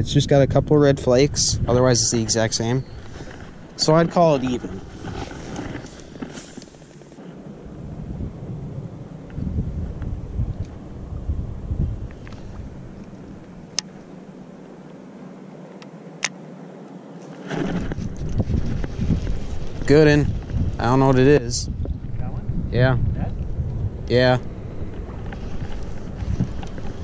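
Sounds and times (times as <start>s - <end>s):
wind buffeting microphone: 0.0s - 14.9s, 17.4s - 27.0s.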